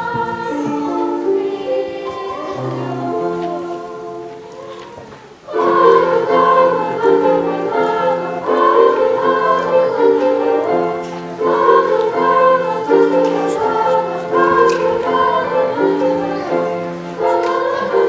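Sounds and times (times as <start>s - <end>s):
choir singing in harmony: 0.0s - 18.0s
piano accompaniment: 0.0s - 18.0s.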